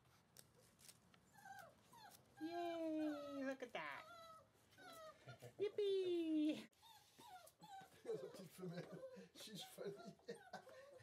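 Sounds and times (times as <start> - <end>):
puppy whimpering and whining: 1.3 - 5.4, 6.7 - 11.0.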